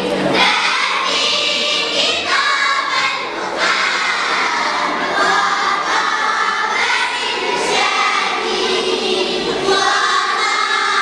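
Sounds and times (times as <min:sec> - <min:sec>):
children's voices: 0:00.0 - 0:11.0
girls choir singing: 0:00.2 - 0:11.0.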